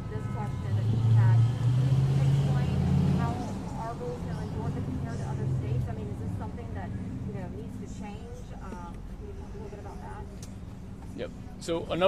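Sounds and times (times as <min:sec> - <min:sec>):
vehicle engine rumbling by: 0:00.6 - 0:10.9.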